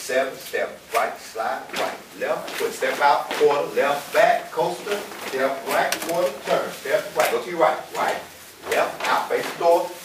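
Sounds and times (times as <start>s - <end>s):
person talking: 0.5s - 10.0s.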